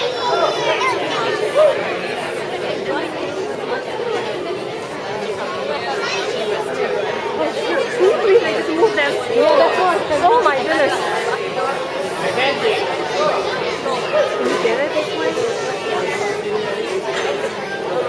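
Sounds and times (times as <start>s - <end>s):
crowd chattering in a hall: 0.0s - 18.0s.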